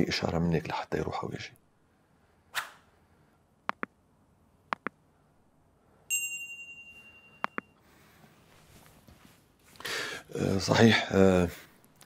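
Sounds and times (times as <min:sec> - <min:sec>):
notification bell ding: 0:06.1 - 0:07.8.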